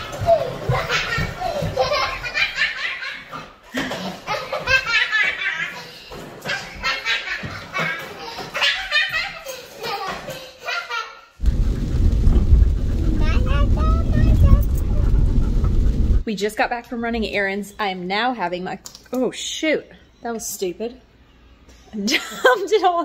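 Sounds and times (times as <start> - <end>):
loud low rumble: 11.4 - 16.2.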